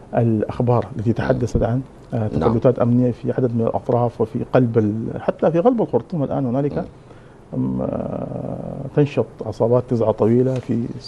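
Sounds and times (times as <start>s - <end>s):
man's drawn-out hesitation sound: 1.0s - 2.9s, 6.4s - 7.0s.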